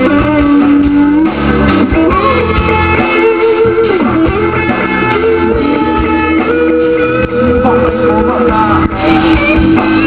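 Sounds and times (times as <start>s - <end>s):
electric guitar: 0.0s - 10.0s
live band playing: 0.0s - 10.0s.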